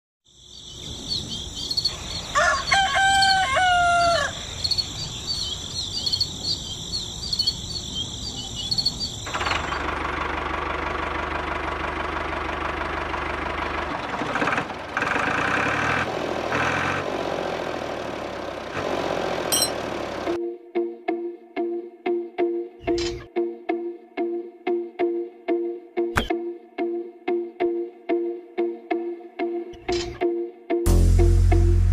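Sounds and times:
birds chirping: 0.4s - 9.9s
rooster crowing: 2.1s - 4.8s.

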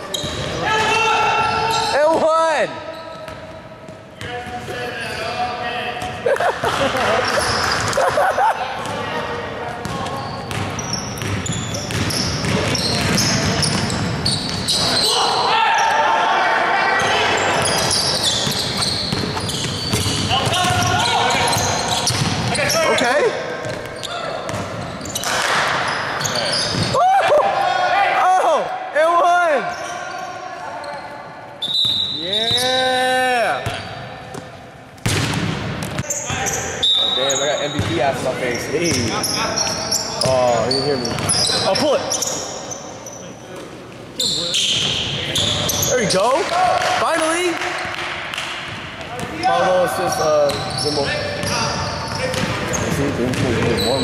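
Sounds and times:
sneakers squeaking: 0.0s - 16.1s, 16.9s - 27.0s, 29.6s - 46.5s, 47.8s - 54.0s.

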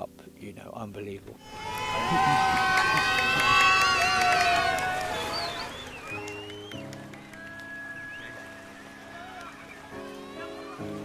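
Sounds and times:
soft sustained music chords: 0.0s - 11.0s.

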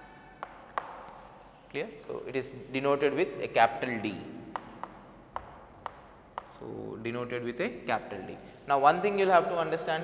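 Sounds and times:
chalk ticking on chalkboard: 0.0s - 1.5s, 4.5s - 6.7s.

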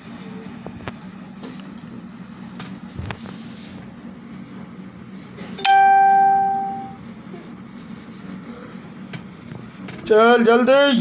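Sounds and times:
chime ringing: 5.6s - 7.0s.

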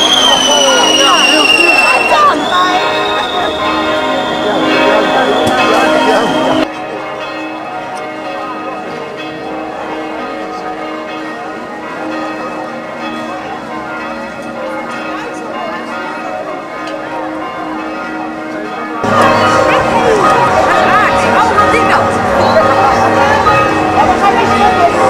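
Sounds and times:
church bells pealing: 0.0s - 25.0s.

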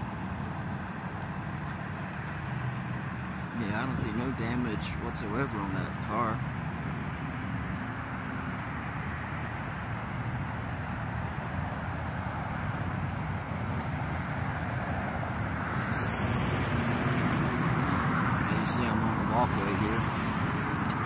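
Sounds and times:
road traffic rumble: 0.0s - 21.0s.

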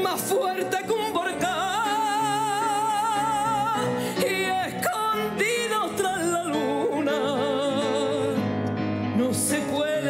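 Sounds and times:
grand piano accompaniment: 0.0s - 10.0s
woman singing a ballad: 0.0s - 10.0s.

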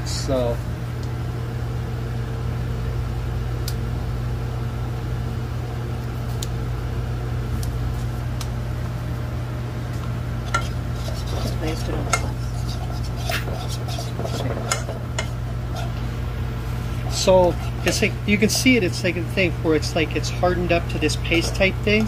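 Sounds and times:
low mechanical hum: 0.0s - 22.0s
fork scraping metal saucepan: 10.5s - 16.0s, 16.9s - 18.8s.

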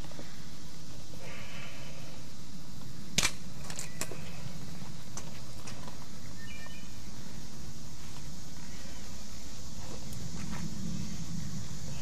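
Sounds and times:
low background hum: 0.0s - 12.0s
sharp clicks: 2.8s - 4.2s.

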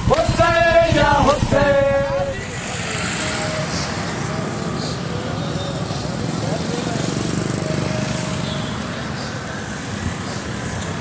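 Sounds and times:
men chanting: 0.0s - 5.8s
street traffic noise: 0.0s - 11.0s.

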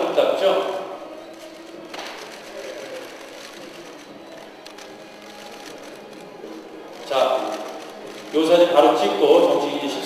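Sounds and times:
camera shutters clicking: 1.3s - 8.6s.

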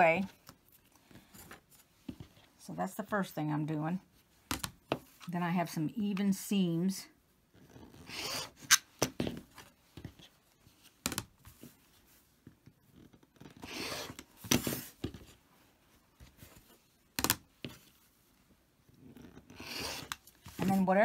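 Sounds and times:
rotary cutter scraping through fabric: 7.8s - 8.8s, 13.6s - 14.2s, 19.3s - 20.2s.

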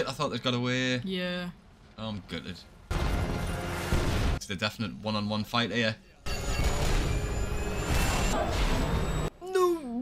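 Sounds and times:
crash and explosion rumble: 2.9s - 4.4s.

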